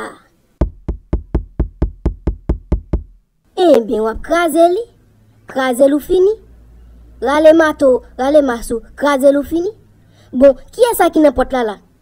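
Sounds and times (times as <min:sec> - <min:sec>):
rapid knocking on a door: 0:00.6 - 0:03.2.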